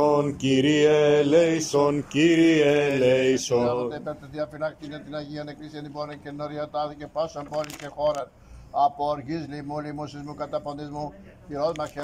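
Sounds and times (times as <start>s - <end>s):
man reciting a prayer: 0.0s - 12.0s.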